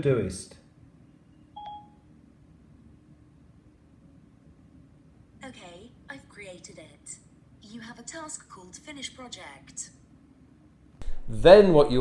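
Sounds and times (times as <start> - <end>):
short electronic beep: 1.6 - 2.0.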